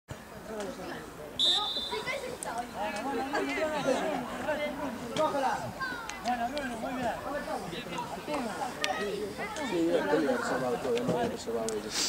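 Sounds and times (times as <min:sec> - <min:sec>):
low talk of spectators: 0:00.1 - 0:12.0
referee's whistle blast: 0:01.4 - 0:02.2.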